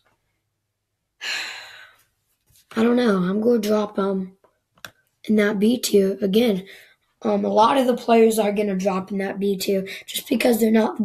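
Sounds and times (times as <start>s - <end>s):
person sighing: 1.2s - 2.0s.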